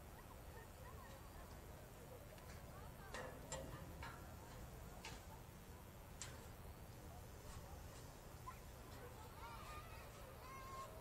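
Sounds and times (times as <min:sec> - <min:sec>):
faint distant voices: 0:00.0 - 0:11.0
low steady hum: 0:00.0 - 0:11.0.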